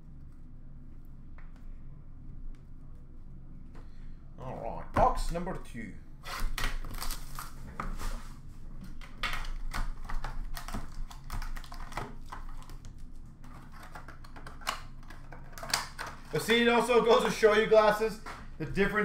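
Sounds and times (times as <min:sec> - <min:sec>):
plastic wrap crinkling: 0:06.7 - 0:08.2.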